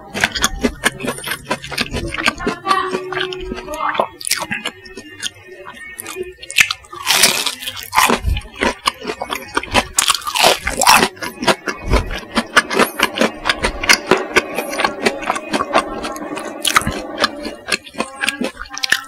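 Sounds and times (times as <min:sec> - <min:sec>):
crunchy biting and chewing: 0:00.0 - 0:19.0.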